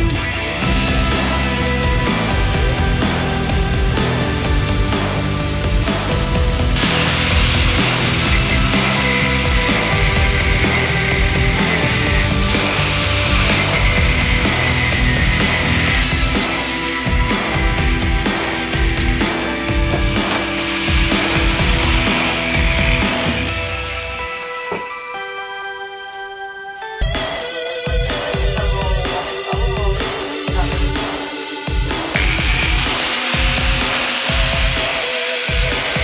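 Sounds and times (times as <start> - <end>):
background music: 0.0 - 36.0
angle grinder cutting metal: 6.0 - 24.9, 32.1 - 36.0.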